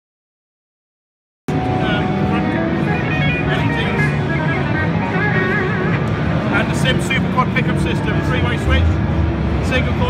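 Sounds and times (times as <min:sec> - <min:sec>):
wavering melody line: 0:01.5 - 0:06.5
hubbub of indistinct voices: 0:01.5 - 0:10.0
music playing: 0:01.5 - 0:10.0.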